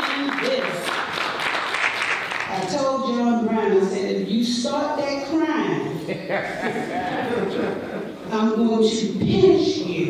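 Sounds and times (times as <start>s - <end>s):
woman speaking over microphone: 0.0s - 0.8s, 2.5s - 6.0s, 8.3s - 10.0s.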